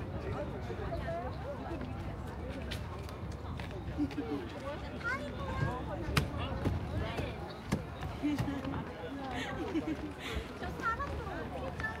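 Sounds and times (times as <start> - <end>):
chatter of passers-by: 0.0 - 12.0.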